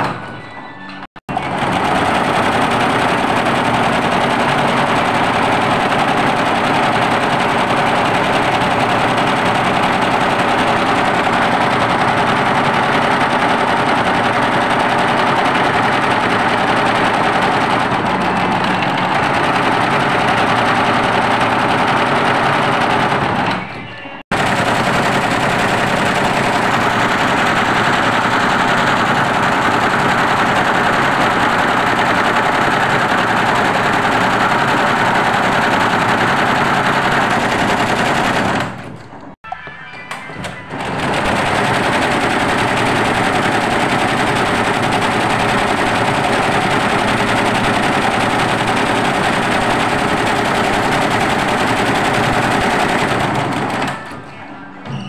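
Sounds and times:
embroidery machine rattling: 0.0s - 23.7s, 24.3s - 39.4s, 40.1s - 55.0s.

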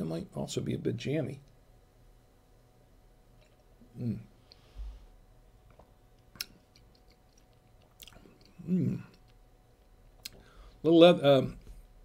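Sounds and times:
mouth clicks and lip smacks: 5.7s - 10.4s.

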